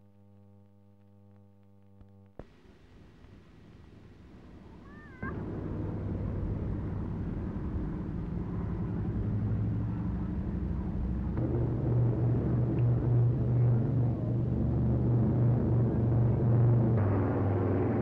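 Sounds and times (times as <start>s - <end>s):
propeller engines droning: 2.4s - 18.0s.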